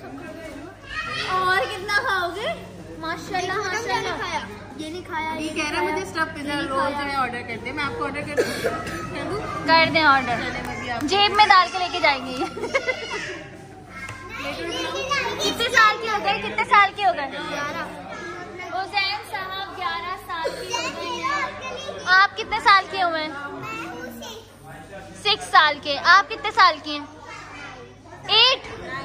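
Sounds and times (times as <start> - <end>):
children's voices and chatter: 0.0 - 29.0.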